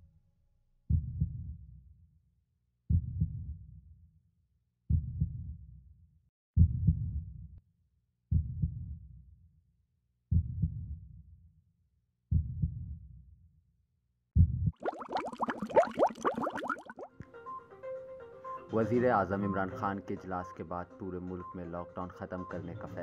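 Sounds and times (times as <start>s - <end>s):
heartbeat double thumps: 4.9s - 5.5s, 6.6s - 7.2s, 10.3s - 10.9s, 12.3s - 12.9s, 14.4s - 17.1s.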